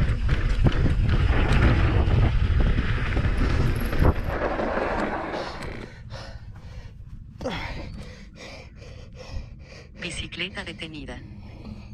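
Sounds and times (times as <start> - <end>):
fast heavy breathing: 5.3 - 11.9.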